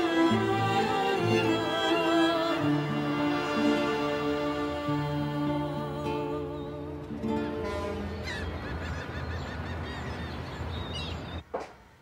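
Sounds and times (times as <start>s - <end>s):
gulls calling: 7.3s - 11.4s.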